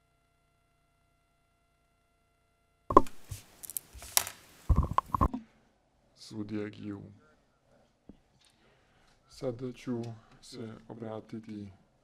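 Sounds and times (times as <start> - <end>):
microphone handling thumps and rustles: 4.7 - 5.4.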